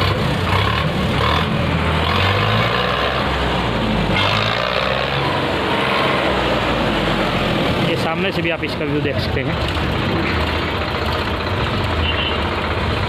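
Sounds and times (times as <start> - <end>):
outdoor noise: 0.0 - 13.0
tractor engine idling: 6.3 - 13.0.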